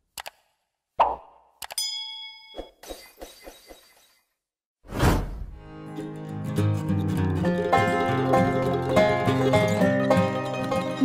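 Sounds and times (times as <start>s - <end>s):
bell ding: 1.8s - 2.8s.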